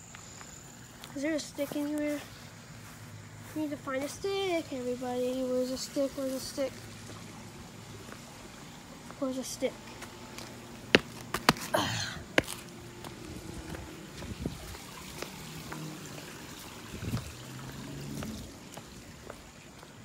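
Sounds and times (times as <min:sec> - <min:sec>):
waterfall trickling into pond: 0:04.7 - 0:09.0, 0:14.0 - 0:20.0
footsteps on brick: 0:09.8 - 0:15.9, 0:18.1 - 0:20.0.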